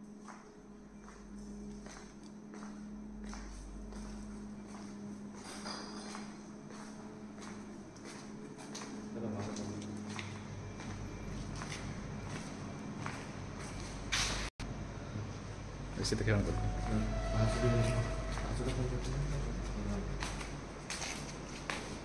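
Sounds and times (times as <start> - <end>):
low steady hum: 0.0 - 22.0
footsteps on tiled floor: 0.2 - 14.5, 18.2 - 22.0.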